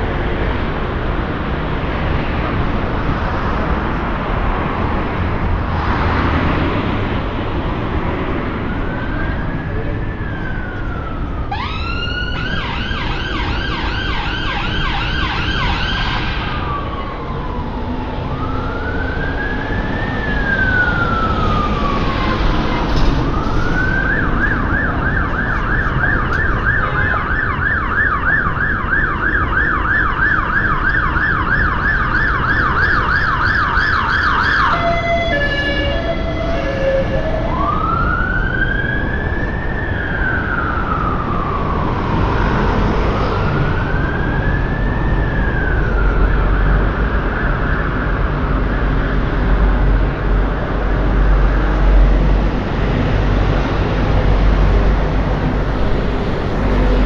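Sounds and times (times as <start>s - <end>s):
emergency vehicle siren: 0.0s - 57.0s
street traffic: 0.0s - 57.0s.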